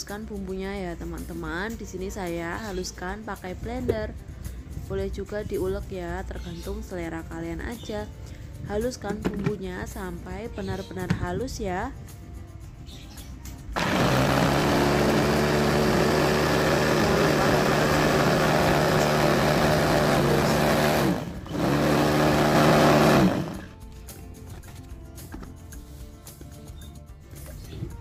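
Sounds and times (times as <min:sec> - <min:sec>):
electric food chopper whirring: 0:13.8 - 0:23.8.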